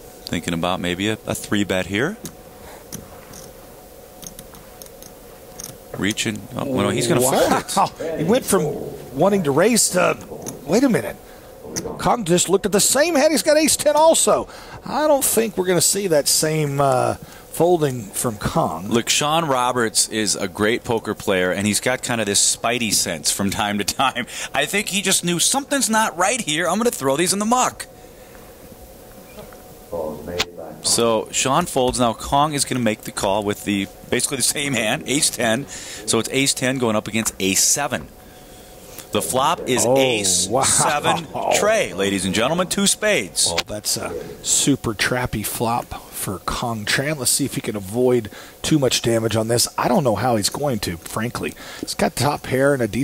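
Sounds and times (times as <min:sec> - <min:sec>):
low room hum: 0:00.0 - 0:53.0
man commentating: 0:06.0 - 0:27.8, 0:29.9 - 0:38.1, 0:39.0 - 0:53.0.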